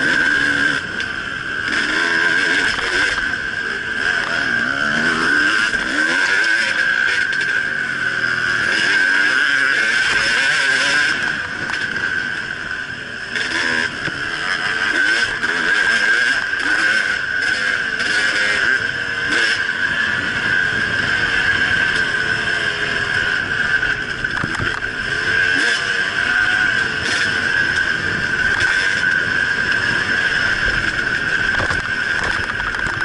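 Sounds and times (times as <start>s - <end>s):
dirt bike engine revving: 0.0s - 33.0s.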